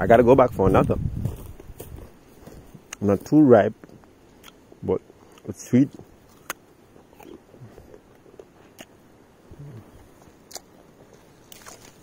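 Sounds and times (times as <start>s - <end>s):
person crunching fruit: 0.5s - 12.0s.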